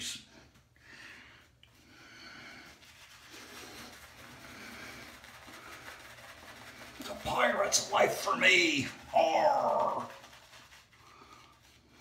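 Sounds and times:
shaving brush swishing: 0:02.6 - 0:12.0.

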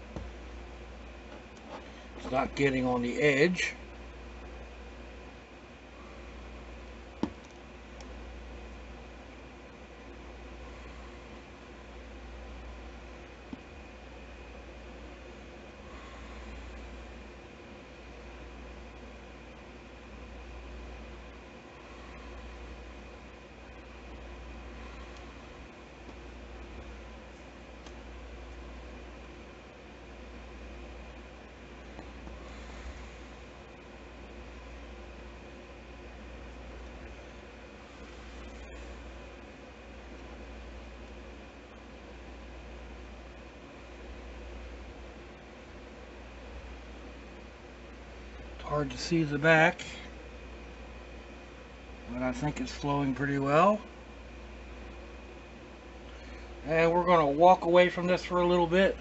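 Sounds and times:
room hum and hiss: 0:00.0 - 0:59.0.

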